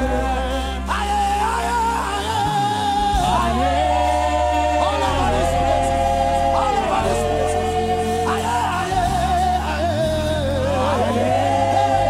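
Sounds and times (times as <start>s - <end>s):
band with deep bass: 0.0s - 12.0s
gospel singers singing: 0.0s - 12.0s.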